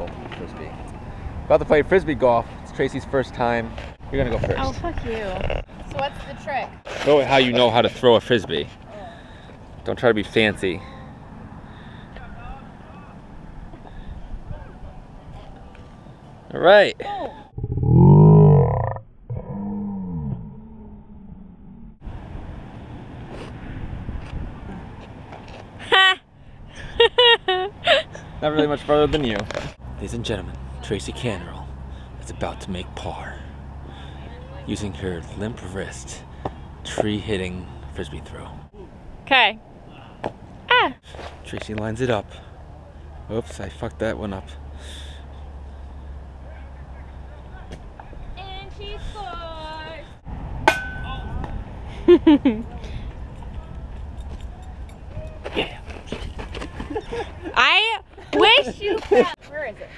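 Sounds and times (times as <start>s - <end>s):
wind rumble on microphone: 4.0s - 5.8s, 20.3s - 25.0s, 50.0s - 55.4s
person groaning: 17.6s - 21.8s.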